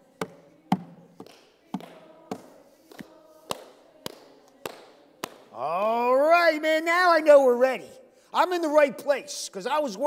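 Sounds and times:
person clapping hands: 1.2 - 5.5.

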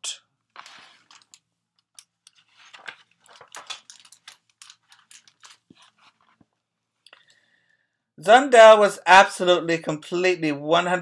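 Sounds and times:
book pages rustling: 0.5 - 6.8.

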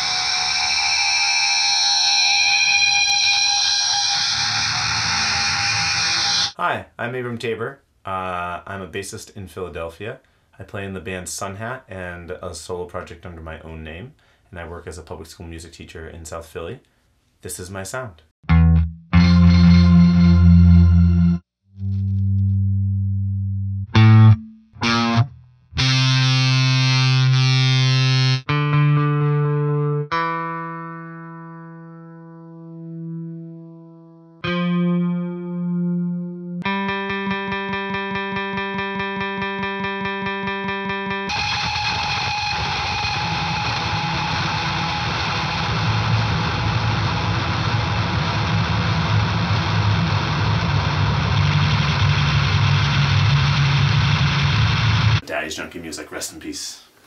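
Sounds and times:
distorted wash of sound: 0.0 - 6.6, 41.3 - 55.2
effected bass guitar notes: 0.0 - 6.6, 18.4 - 55.2.

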